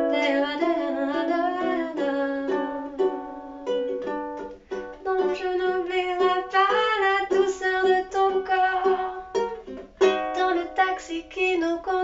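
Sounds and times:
ukulele playing: 0:00.0 - 0:12.0.

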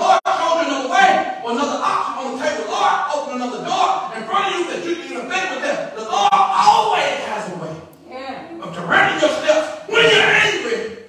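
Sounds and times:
man preaching into microphone: 0:00.0 - 0:07.9, 0:08.6 - 0:11.0.

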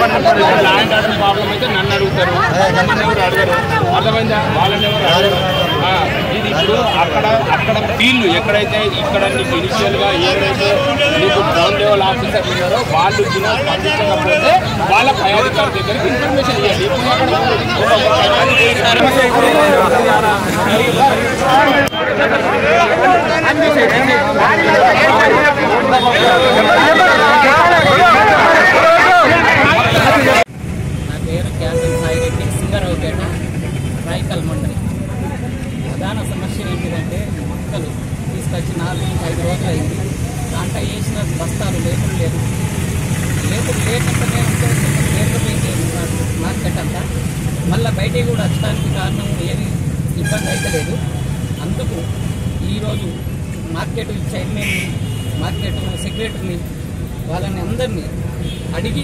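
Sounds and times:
protesting crowd voices: 0:00.0 - 0:59.0
road traffic rumble: 0:00.0 - 0:59.0
man talking: 0:43.2 - 0:59.0.

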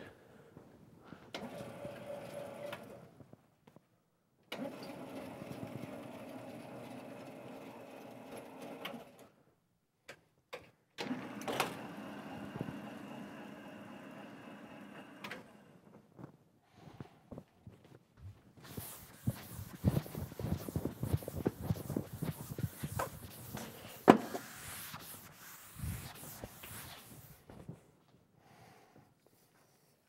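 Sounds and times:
chalk scratching on blackboard: 0:18.6 - 0:27.4
chalk tapping: 0:18.6 - 0:27.4.

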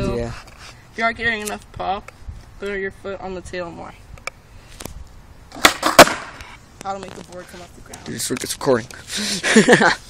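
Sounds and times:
skateboard scraping: 0:05.5 - 0:07.8
skateboard clacking on concrete: 0:05.5 - 0:08.5.

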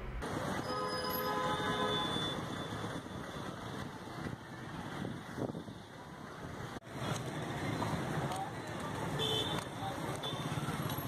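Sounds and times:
distant traffic noise: 0:00.0 - 0:11.0.

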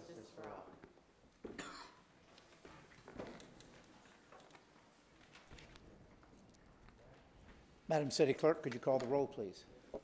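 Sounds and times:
person coughing: 0:01.5 - 0:02.1.

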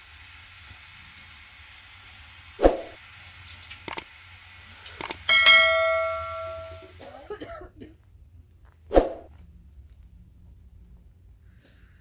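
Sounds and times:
sharp clicks: 0:03.3 - 0:04.1, 0:04.9 - 0:05.3
bell ding sound effect: 0:05.3 - 0:06.9.

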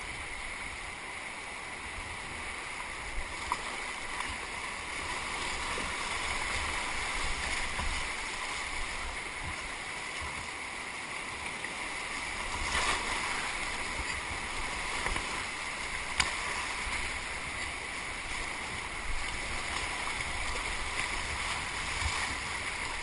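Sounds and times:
whitewater rushing through rapids: 0:00.0 - 0:23.0.

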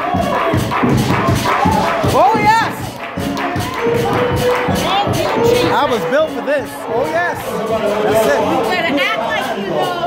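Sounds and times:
live church band music: 0:00.0 - 0:10.0.

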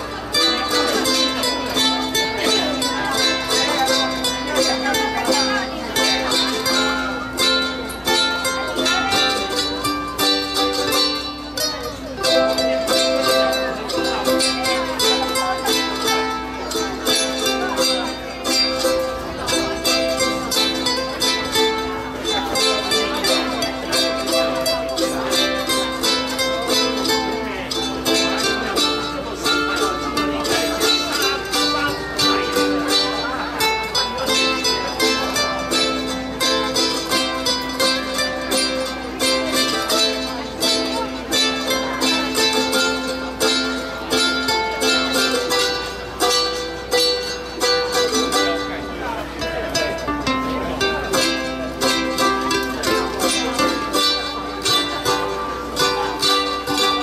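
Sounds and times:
ukulele ensemble strumming: 0:00.0 - 0:57.0.

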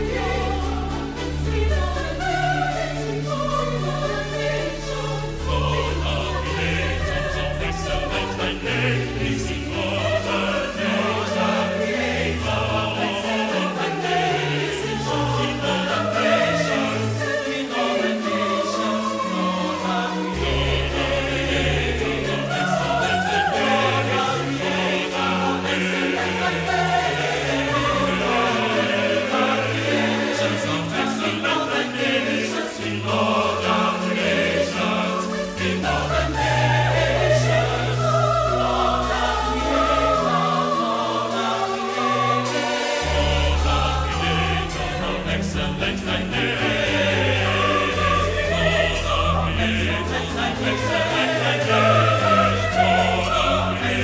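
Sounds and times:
mixed choir singing in harmony: 0:00.0 - 0:54.0.

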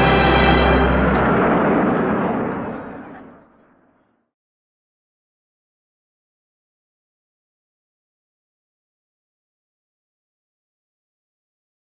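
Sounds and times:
jet aircraft engine rush: 0:00.0 - 0:04.0.

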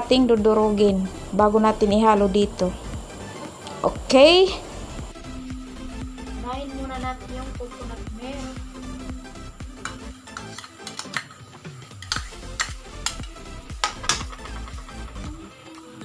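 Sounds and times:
background music: 0:00.0 - 0:16.0.

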